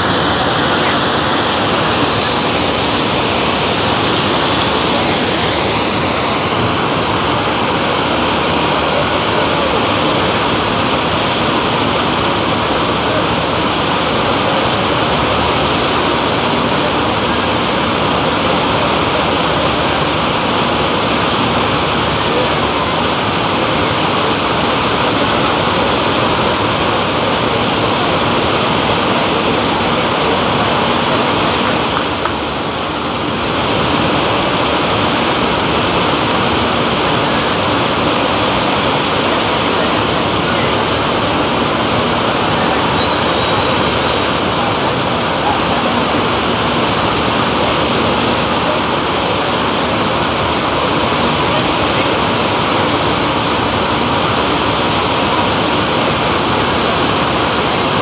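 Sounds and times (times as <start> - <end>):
rushing sheet of water: 0.0 - 58.0.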